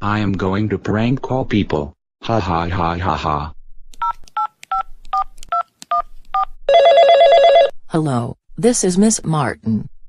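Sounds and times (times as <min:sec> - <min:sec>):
telephone ringing: 0:06.7 - 0:07.8.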